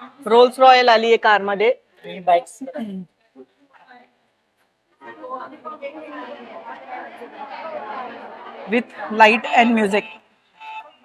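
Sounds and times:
faint murmur of voices: 0:04.9 - 0:11.0.

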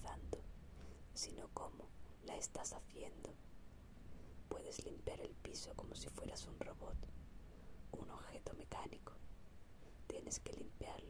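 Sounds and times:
person whispering: 0:00.0 - 0:00.5, 0:01.1 - 0:03.4, 0:04.5 - 0:07.0, 0:07.9 - 0:09.2, 0:10.1 - 0:11.0.

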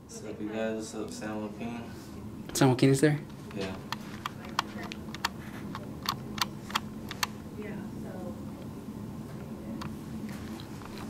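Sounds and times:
faint steady hum: 0:00.0 - 0:11.0
computer keyboard typing clicks: 0:04.2 - 0:07.3.

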